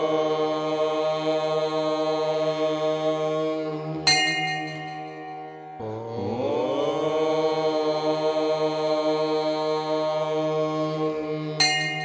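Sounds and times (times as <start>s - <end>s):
mantra chanting: 0.0s - 12.0s.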